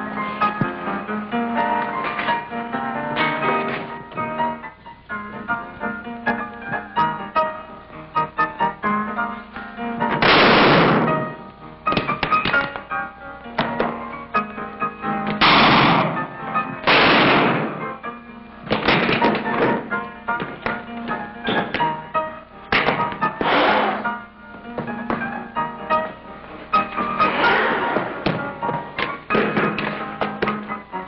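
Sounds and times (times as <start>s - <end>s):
piano music: 0.0s - 31.0s
revolver shots: 16.8s - 17.9s.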